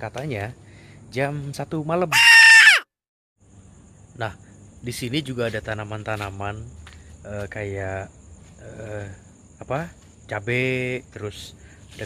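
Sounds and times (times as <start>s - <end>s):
high-pitched cry: 2.1s - 2.9s.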